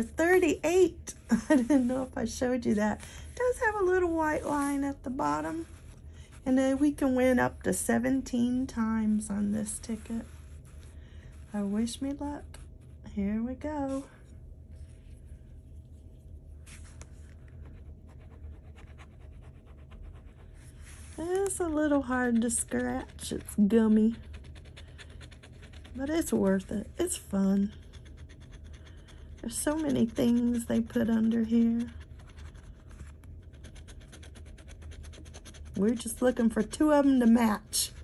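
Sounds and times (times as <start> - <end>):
scratching lottery ticket: 16.7 - 38.0.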